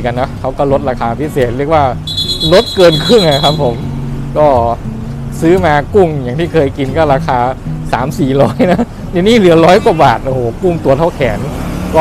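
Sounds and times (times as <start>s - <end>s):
man speaking: 0.0s - 4.8s, 5.4s - 12.0s.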